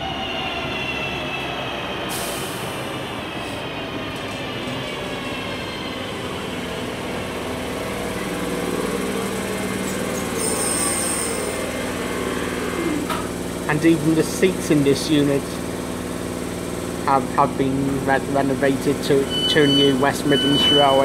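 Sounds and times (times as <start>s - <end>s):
train hiss: 2.1s - 3.1s
electric train motor whine: 5.0s - 13.7s.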